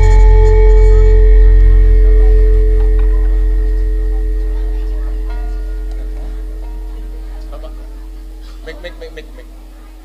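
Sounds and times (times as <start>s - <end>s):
large gong ringing: 0.0s - 10.0s.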